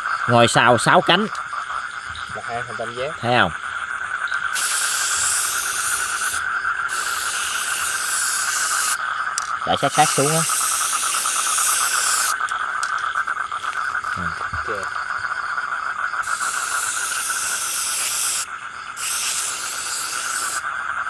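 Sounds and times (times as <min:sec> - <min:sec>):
night insects chirring: 0:00.0 - 0:21.0
spray paint can hissing: 0:04.5 - 0:12.6, 0:16.2 - 0:20.6.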